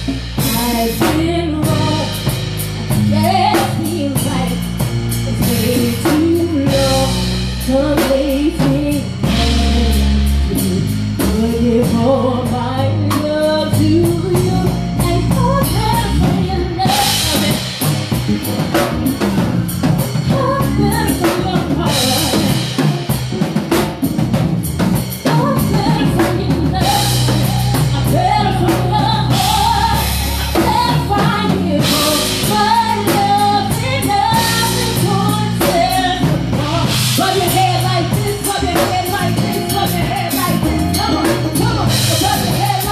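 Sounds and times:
soul band playing: 0:00.0 - 0:42.9
woman singing: 0:00.4 - 0:17.8, 0:20.1 - 0:23.1, 0:25.2 - 0:42.9.

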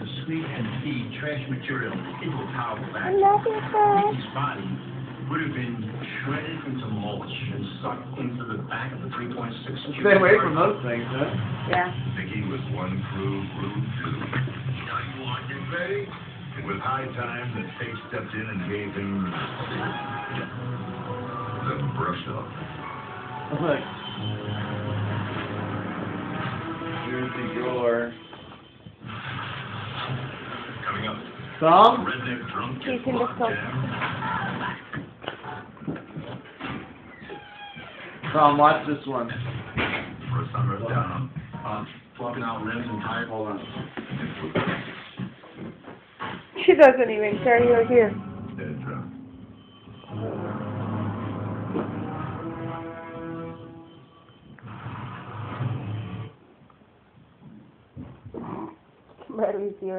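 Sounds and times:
dog growling: 0:57.4 - 0:58.9.

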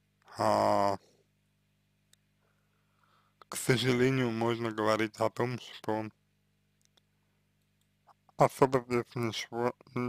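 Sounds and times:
faint steady low hum: 0:00.0 - 0:10.0
man's voice: 0:00.3 - 0:01.0, 0:03.5 - 0:06.1, 0:08.4 - 0:10.0
faint clicks: 0:06.8 - 0:08.2.

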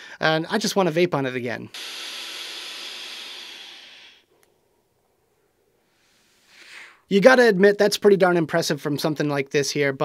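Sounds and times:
air hissing through vape pen: 0:01.7 - 0:04.3, 0:05.9 - 0:07.0
breathy exhale: 0:01.7 - 0:04.4, 0:05.8 - 0:07.1.

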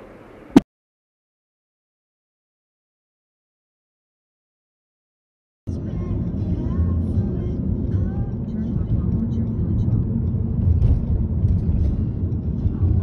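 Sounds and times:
car engine and tyre rumble: 0:00.0 - 0:00.6, 0:05.7 - 0:13.0.

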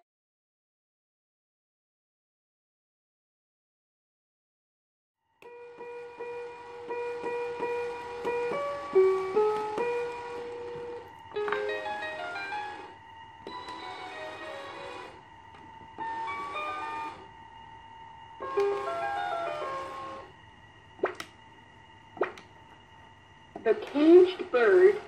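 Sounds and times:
faint steady whine: 0:05.2 - 0:25.0.

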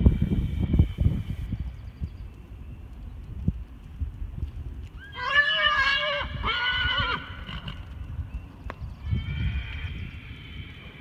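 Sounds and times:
hooves thudding on dirt: 0:01.9 - 0:09.0
horse whinnying: 0:05.0 - 0:07.8.

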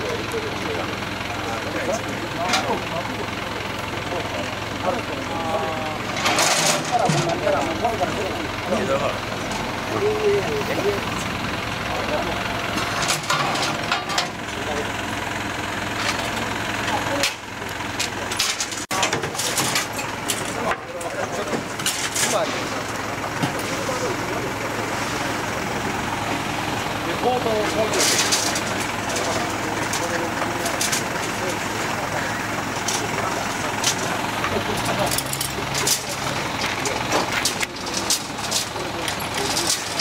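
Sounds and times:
people's voices: 0:00.0 - 0:40.0
truck engine idling: 0:00.0 - 0:40.0.

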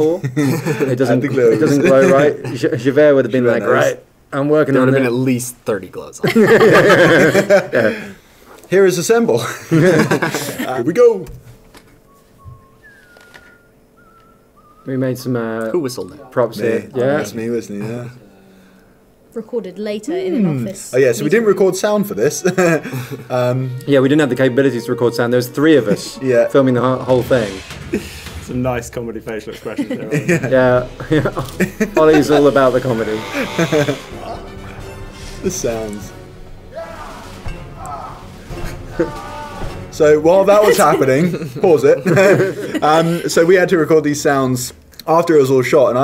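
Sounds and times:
background music with held notes: 0:00.0 - 0:03.9, 0:09.5 - 0:19.3, 0:20.4 - 0:43.7
laughter: 0:00.2 - 0:02.8, 0:06.2 - 0:08.1, 0:09.4 - 0:10.8, 0:22.4 - 0:23.3, 0:29.6 - 0:32.3, 0:33.4 - 0:34.1, 0:40.6 - 0:43.2
man whistling a slow tune: 0:12.0 - 0:15.0
person speaking: 0:38.9 - 0:43.4.

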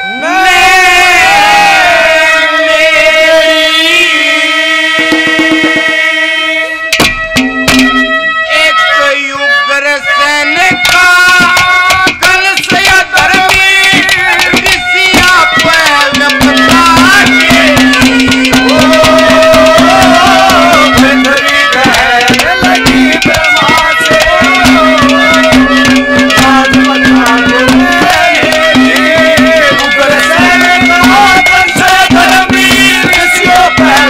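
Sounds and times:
hand drums: 0:05.0 - 0:06.1, 0:06.9 - 0:08.4, 0:10.6 - 0:34.0
man singing folk song: 0:08.5 - 0:34.0.

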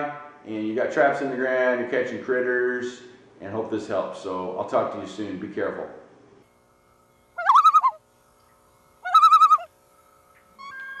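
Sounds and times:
held tone: 0:07.4 - 0:08.0, 0:09.1 - 0:09.7
warbling animal calls: 0:07.4 - 0:08.0, 0:09.0 - 0:09.7, 0:10.6 - 0:11.0.

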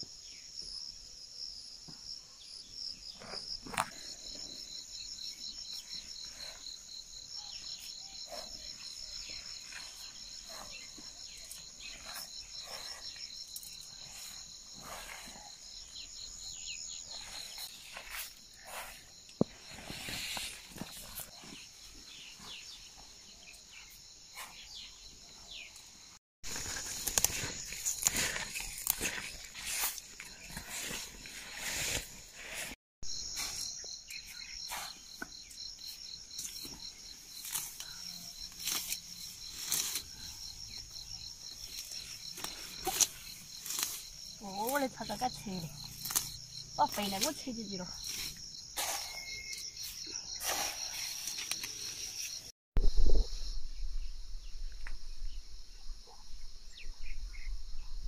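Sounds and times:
insects trilling: 0:00.0 - 0:58.0
rustling of leaves and clothing: 0:03.0 - 0:24.9, 0:26.4 - 0:52.5.

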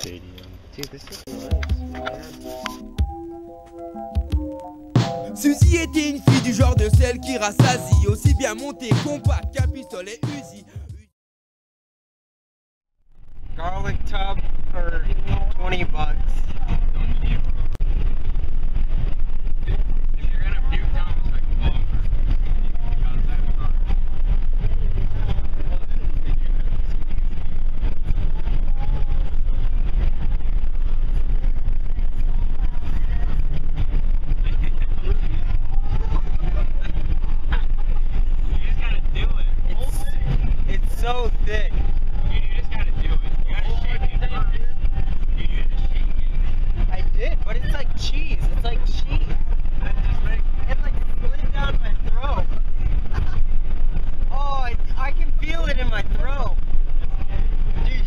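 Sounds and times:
car interior rumble: 0:13.1 - 0:58.0
indistinct voices: 0:19.6 - 0:58.0.

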